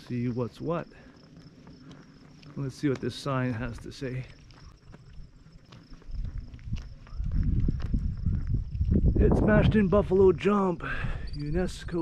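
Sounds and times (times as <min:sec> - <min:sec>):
footsteps on pavement: 0:00.0 - 0:11.0
high insect trill: 0:00.0 - 0:12.0.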